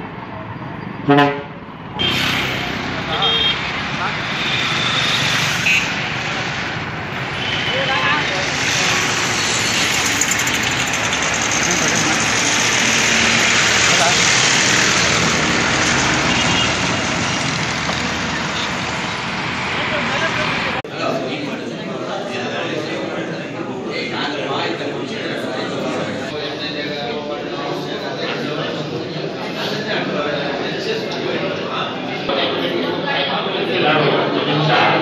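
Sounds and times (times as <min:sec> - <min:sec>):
street noise: 0:00.0 - 0:35.0
bus engine running: 0:00.6 - 0:20.8
people's voices: 0:01.8 - 0:35.0.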